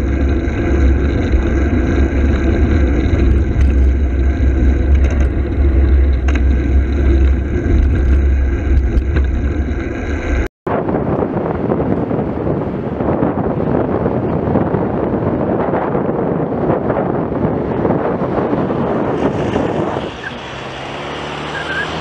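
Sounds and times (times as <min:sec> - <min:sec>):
road noise: 0:00.0 - 0:22.0
wind noise on microphone: 0:00.0 - 0:22.0.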